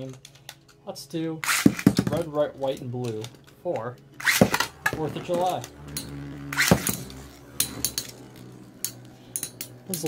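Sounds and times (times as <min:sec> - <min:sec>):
spinning tops whirring: 0:04.2 - 0:10.0.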